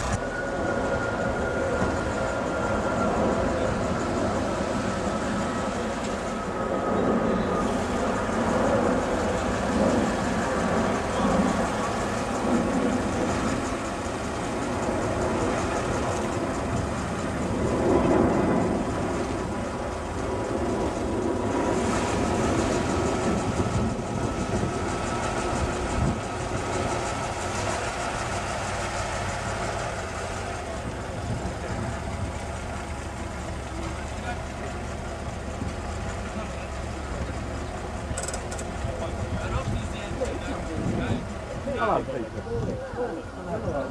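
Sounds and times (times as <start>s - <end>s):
old car engine running: 7.6s - 41.7s
crowd voices: 30.2s - 43.9s.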